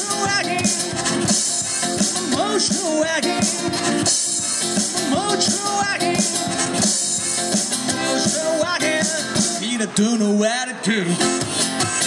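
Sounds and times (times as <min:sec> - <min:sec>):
slide resonator guitar blues: 0:00.0 - 0:09.7
harmonica: 0:00.5 - 0:09.4.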